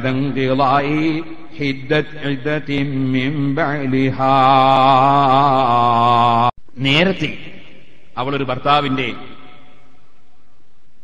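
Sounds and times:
man chanting: 0.0s - 9.9s.

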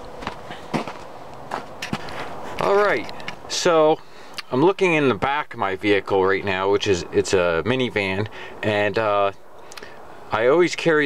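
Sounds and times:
knocks and scuffs in snow: 0.0s - 2.9s.

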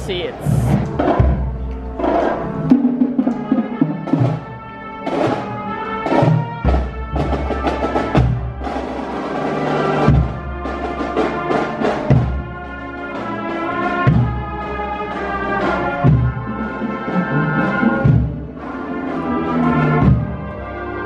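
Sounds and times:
drum beats: 0.0s - 14.8s
horns playing a tune: 0.0s - 21.0s.

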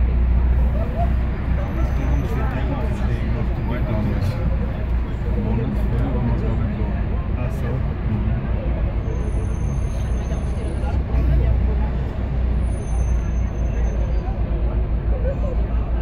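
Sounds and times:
bus engine and road rumble: 0.0s - 16.0s.

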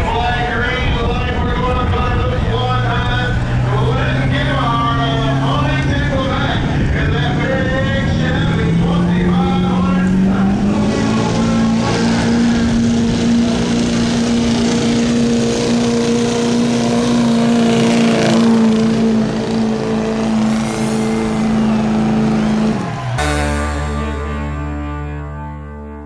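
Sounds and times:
diesel truck engine at high revs: 0.0s - 25.6s.

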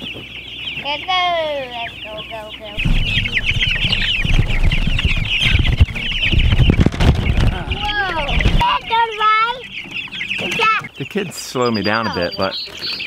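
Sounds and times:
chicks peeping: 0.0s - 13.0s
children's voices: 0.8s - 2.8s, 7.5s - 9.7s, 10.4s - 11.0s
wheelbarrow rumbling over ground: 2.8s - 9.0s.

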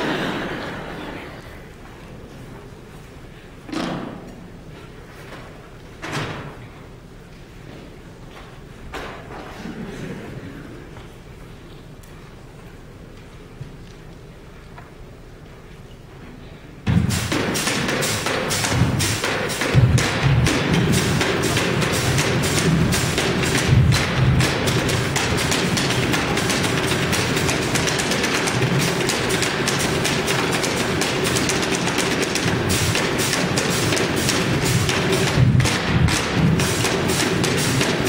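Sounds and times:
low thumps: 16.9s - 38.0s
percussion on a refrigerator: 16.9s - 38.0s.

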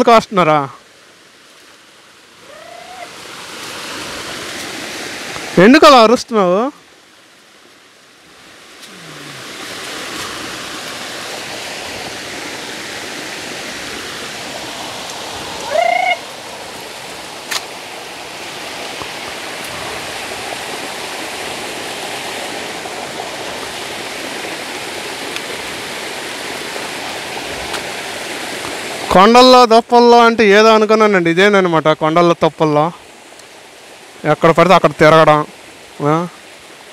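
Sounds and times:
waterfall rushing: 0.0s - 36.9s
loud rising call: 2.4s - 3.2s, 15.6s - 16.3s.

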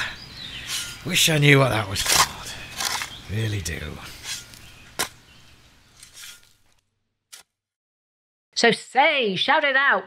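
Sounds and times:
faint outdoor ambience: 0.0s - 6.8s.

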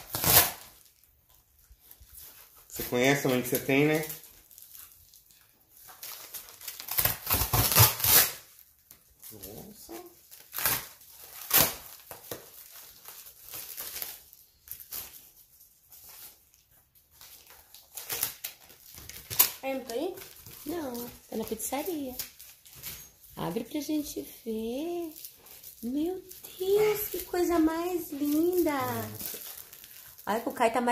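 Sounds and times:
cardboard box tearing: 0.0s - 0.8s, 6.6s - 8.5s
plastic packaging crinkling: 0.0s - 30.9s.

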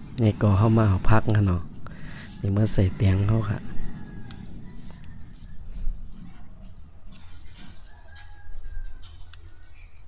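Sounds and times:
leaves and stems rustling: 4.3s - 10.0s.

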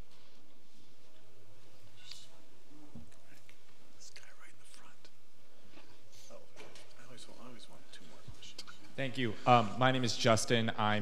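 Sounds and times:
faint whispery voices: 1.1s - 5.2s.

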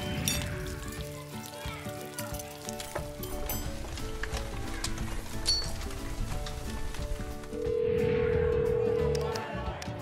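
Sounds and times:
background music of held notes: 0.0s - 10.0s.

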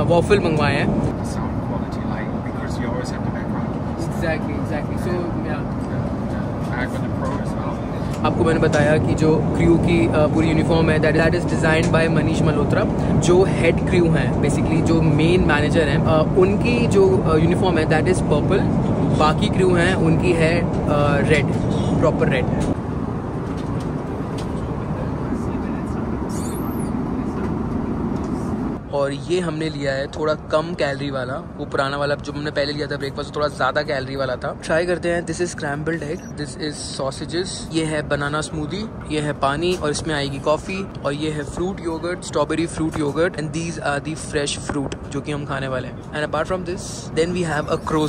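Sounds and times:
airliner cabin rumble: 0.0s - 28.8s.

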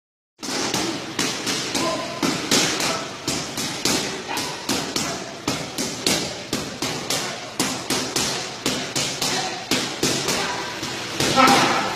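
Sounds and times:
boxing punches thudding: 0.4s - 11.9s.

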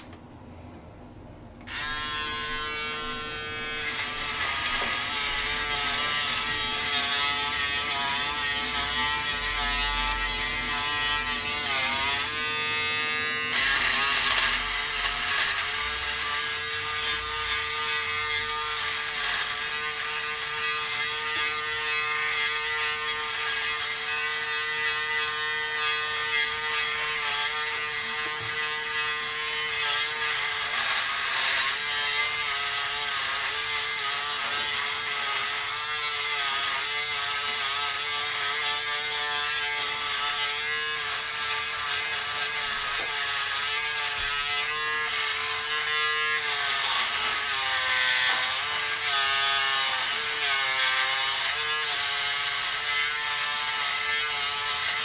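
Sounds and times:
electric shaver running: 1.6s - 55.0s
shaver scratching stubble: 1.7s - 55.0s.

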